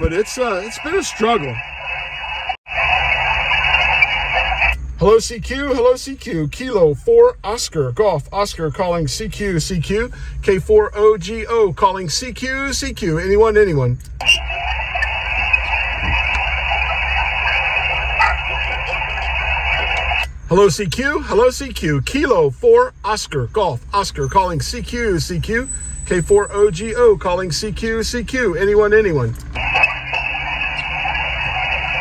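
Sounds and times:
radio static hiss: 0:00.0 - 0:06.4, 0:14.2 - 0:21.7, 0:29.6 - 0:32.0.

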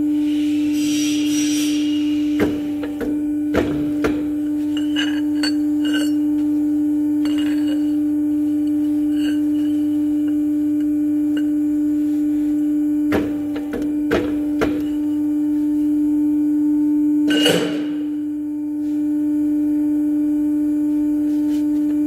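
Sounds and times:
press motor humming: 0:02.1 - 0:15.5.

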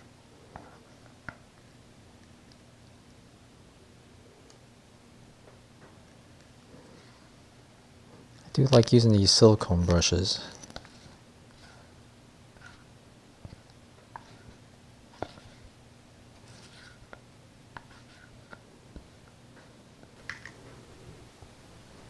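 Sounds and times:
low steady hum: 0:00.0 - 0:22.0
spatula scraping bowl: 0:16.4 - 0:17.1.

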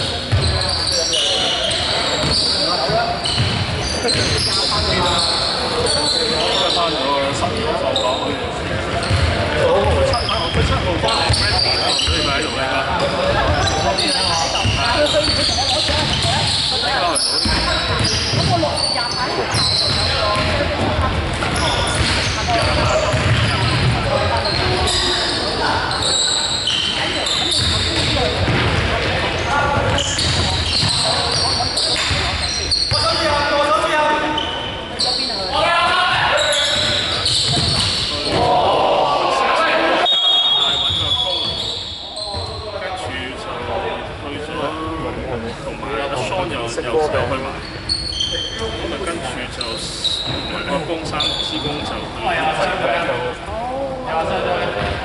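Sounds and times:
sneaker squeaks: 0:00.0 - 0:38.6, 0:39.9 - 0:42.8, 0:47.3 - 0:52.2, 0:54.6 - 0:55.0
ball bouncing on wooden court: 0:00.3 - 0:00.6, 0:02.2 - 0:04.4, 0:08.9 - 0:11.4, 0:14.6 - 0:16.6, 0:17.4 - 0:18.7, 0:19.5 - 0:24.7, 0:27.5 - 0:33.0, 0:36.7 - 0:38.5.

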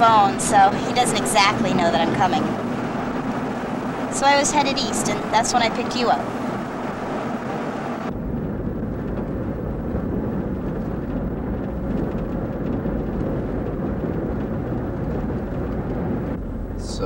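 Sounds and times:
car road and engine noise: 0:00.0 - 0:17.0.

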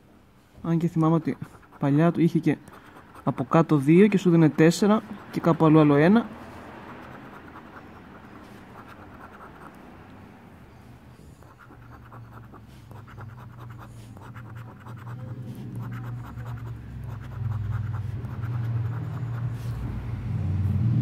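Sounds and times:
coin scratching lottery ticket: 0:01.2 - 0:05.9, 0:06.6 - 0:09.9, 0:11.2 - 0:19.8.

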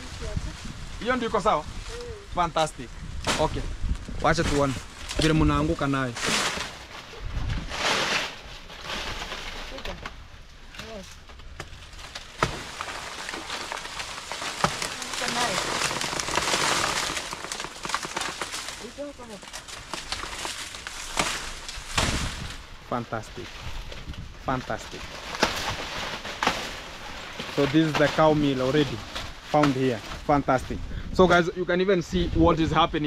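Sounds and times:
dry leaves rustling and crackling: 0:00.0 - 0:30.8.

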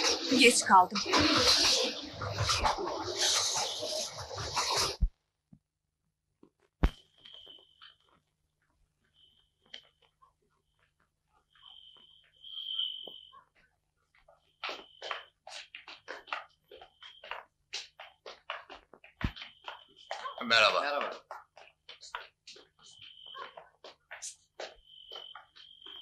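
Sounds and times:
whistle blasts: 0:12.3 - 0:13.4.

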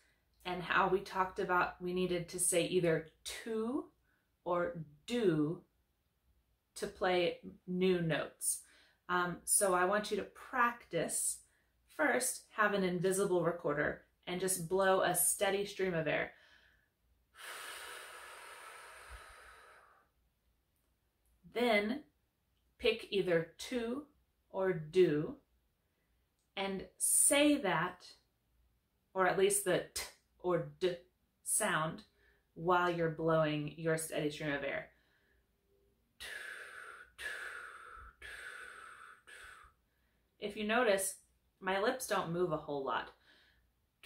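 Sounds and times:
woman blowing air through lips: 0:36.2 - 0:39.9.

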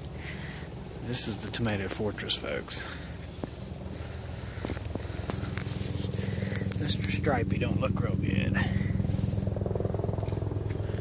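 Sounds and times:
pulsing low engine hum: 0:00.0 - 0:11.0.

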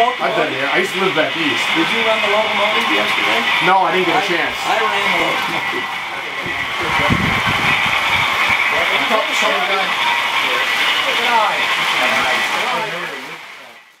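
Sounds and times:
people talking: 0:00.0 - 0:13.9
steady high hiss: 0:00.0 - 0:14.0.

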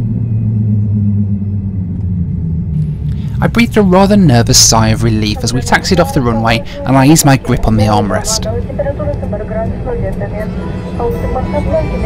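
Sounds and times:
airliner cabin rumble: 0:00.0 - 0:12.0
voices: 0:03.4 - 0:12.0.

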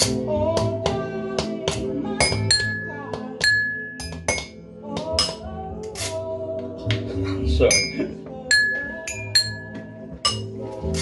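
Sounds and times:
background music: 0:00.0 - 0:11.0
utensils clinking on glass lid: 0:07.7 - 0:10.5.

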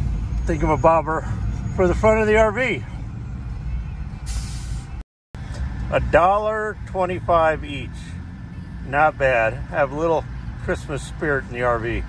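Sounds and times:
short hiss: 0:04.3 - 0:04.9.

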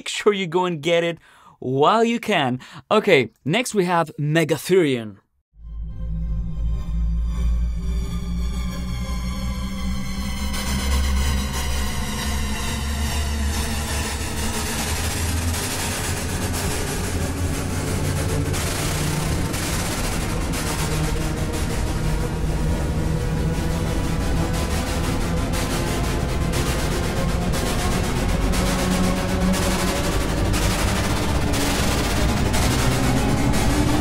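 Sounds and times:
deep synthesizer drone: 0:05.6 - 0:34.0
hissing synth noise texture: 0:12.2 - 0:34.0.

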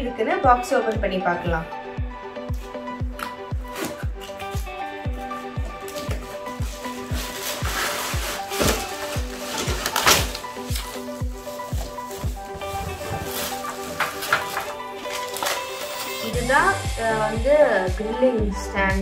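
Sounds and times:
background music with steady beat: 0:00.0 - 0:19.0
cardboard and plastic packaging rustling: 0:02.6 - 0:16.4.

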